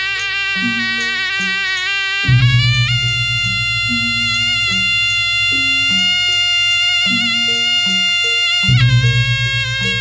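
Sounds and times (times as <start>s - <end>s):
drum strokes: 0.0s - 10.0s
reedy shawm note: 0.0s - 10.0s.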